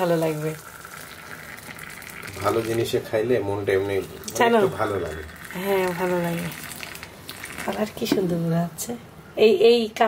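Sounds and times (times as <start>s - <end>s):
water trickling into mugs: 0.0s - 8.5s.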